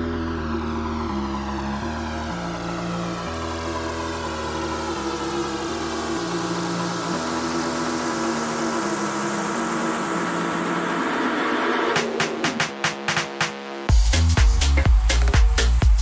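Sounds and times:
slow bass line: 0.0 - 10.3, 13.9 - 16.0.

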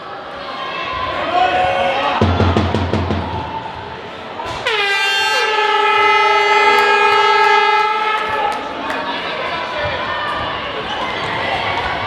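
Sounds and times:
air horn blast: 4.5 - 8.5.

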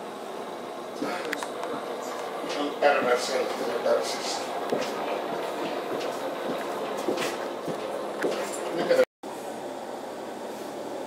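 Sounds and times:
train interior noise: 1.0 - 9.0.

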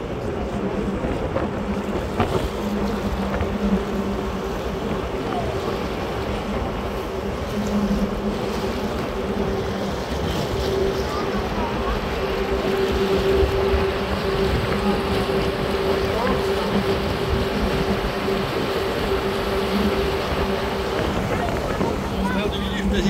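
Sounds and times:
boat engine drone: 0.0 - 23.0
water rushing: 0.0 - 23.0
wind: 0.0 - 23.0.

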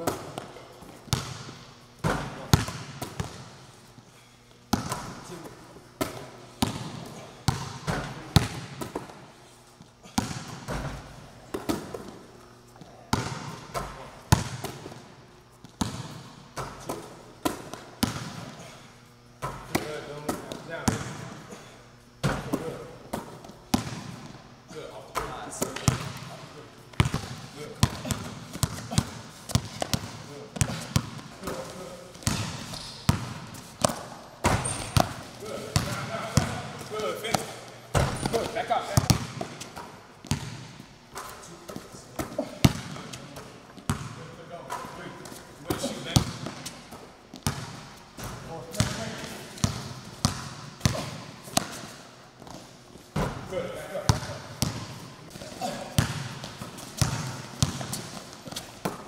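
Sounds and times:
basketball bouncing on wooden floor: 6.0 - 9.1, 13.1 - 15.0, 15.7 - 18.6, 22.2 - 24.4, 27.0 - 44.9, 45.7 - 52.6, 54.1 - 59.0.

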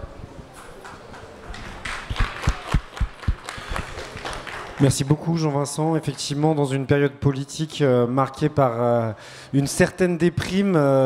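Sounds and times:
hand clapping: 0.8 - 4.9.

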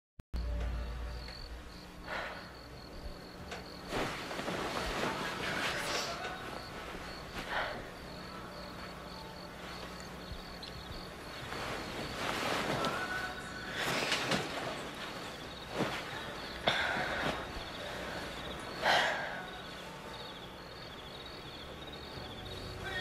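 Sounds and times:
low hum: 0.4 - 22.9
crickets chirping: 0.4 - 23.0.

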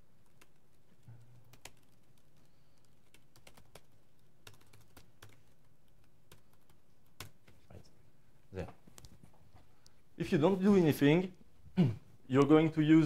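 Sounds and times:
laptop keyboard typing: 0.0 - 7.6.

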